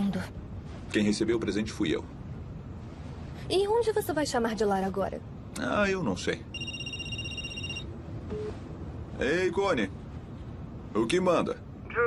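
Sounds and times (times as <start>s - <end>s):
phone ringtone: 6.5s - 8.5s.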